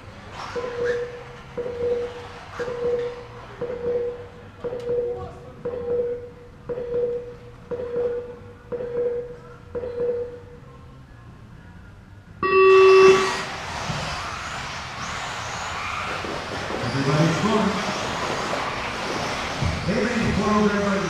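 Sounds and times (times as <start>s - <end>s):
race start tone: 0.4s - 10.4s, 12.4s - 21.0s
short beeps: 0.6s - 10.7s, 12.4s - 13.5s
rc cars running on carpet: 13.2s - 21.0s.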